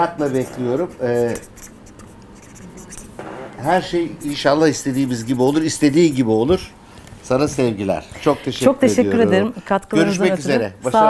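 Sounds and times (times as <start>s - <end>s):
pen scratching: 0.2s - 6.6s.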